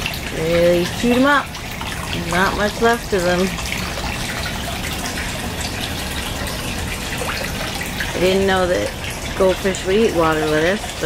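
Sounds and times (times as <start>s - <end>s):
water pouring into pond: 0.0s - 11.0s.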